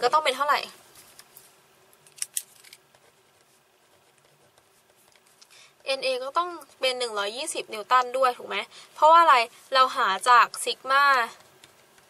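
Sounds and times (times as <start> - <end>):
pen scratching on paper: 2.9 - 5.3.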